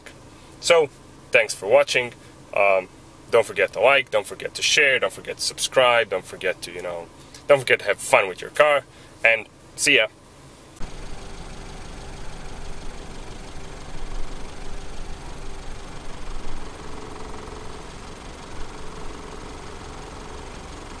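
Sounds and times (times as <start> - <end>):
car engine idling: 10.8 - 21.0.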